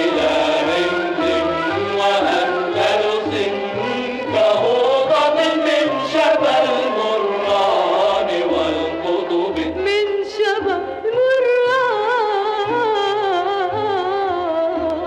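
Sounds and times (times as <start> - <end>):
instrumental accompaniment: 0.0 - 15.0.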